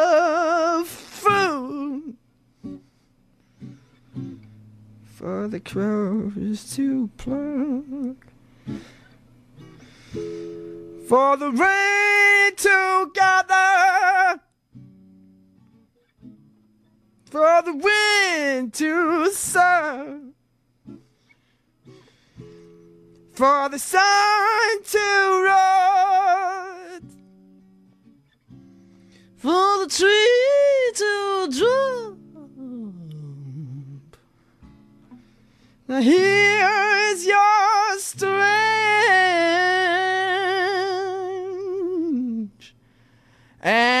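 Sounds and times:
person singing slow ballad: 0.0 - 2.8, 5.1 - 9.0, 9.6 - 14.5, 17.3 - 20.4, 23.3 - 27.2, 29.1 - 34.4, 35.8 - 42.8, 43.6 - 44.0
guitar chord ringing: 0.0 - 13.9, 14.7 - 30.4, 31.2 - 41.9.

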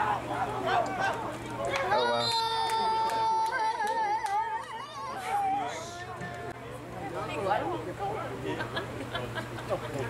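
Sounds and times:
people shouting and cheering: 0.0 - 6.6
long high yell: 1.9 - 5.8.

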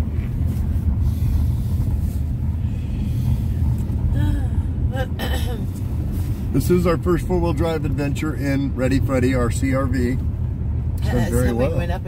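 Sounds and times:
car engine rumble: 0.0 - 12.0
tyres on wet road: 0.0 - 12.0.

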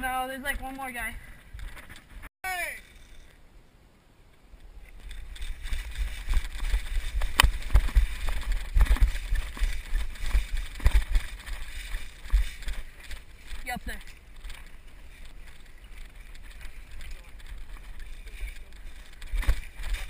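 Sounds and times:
wind: 0.0 - 20.0
running footsteps on sand: 5.3 - 20.0.

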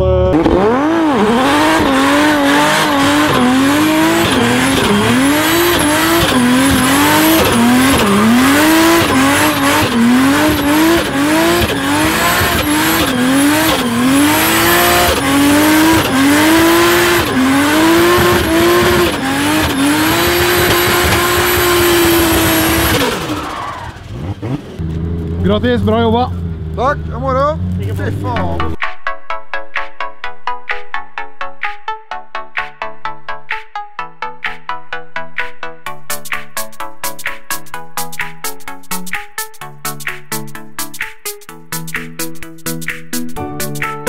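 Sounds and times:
car engine revving: 0.0 - 28.8
tyre squeal: 18.2 - 24.6.

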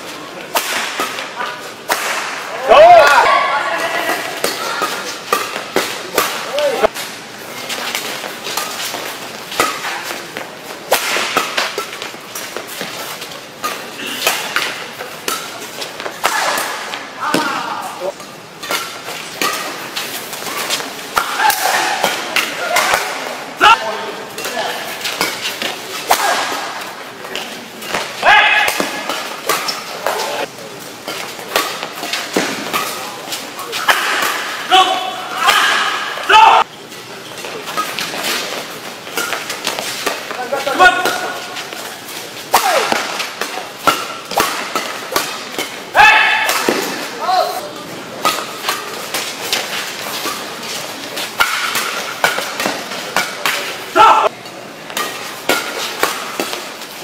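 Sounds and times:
rackets striking shuttlecock: 0.4 - 2.5, 3.1 - 23.4, 24.4 - 34.8, 37.4 - 47.2, 48.2 - 54.0, 54.9 - 57.0
players shouting: 1.4 - 5.1, 21.2 - 24.0, 28.2 - 29.1, 33.8 - 36.7, 42.5 - 43.3, 45.9 - 47.9, 53.9 - 54.3.

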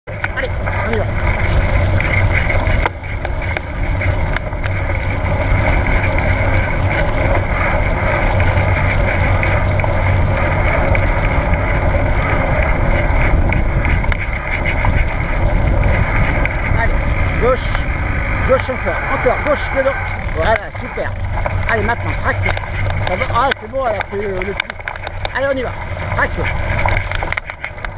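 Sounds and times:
bike rattles and clicks: 0.1 - 27.9
bike tyres rumbling on dirt: 0.1 - 27.9
wind rushing on microphone: 0.1 - 27.9.

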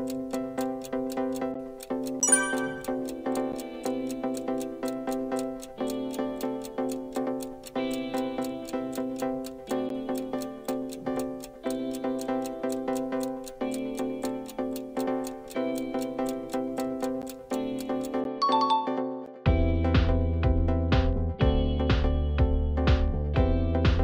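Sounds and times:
sustained music chords: 0.0 - 19.7
clock ticking: 0.0 - 21.8.

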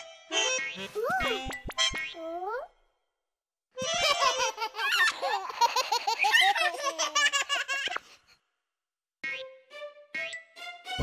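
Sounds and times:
baby laughing: 3.8 - 8.1.

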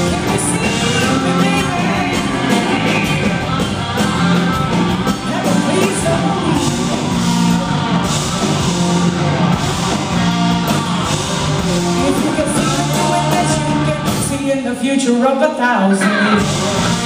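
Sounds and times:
blues-rock band playing: 0.0 - 17.0
slide electric guitar: 0.0 - 17.0.

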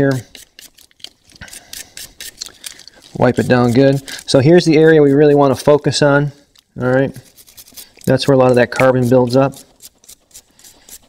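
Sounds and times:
brush scrubbing metal parts: 0.0 - 6.1, 6.8 - 11.0.

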